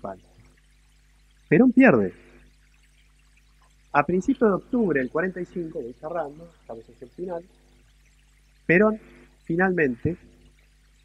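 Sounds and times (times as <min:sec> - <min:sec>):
low steady hum: 0:00.0 - 0:11.0
man speaking: 0:01.5 - 0:02.2, 0:04.0 - 0:07.4, 0:08.7 - 0:10.2.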